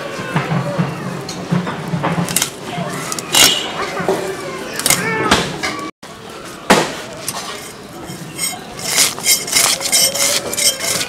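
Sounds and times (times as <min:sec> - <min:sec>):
blade scraping fish scales: 0:07.3 - 0:11.0.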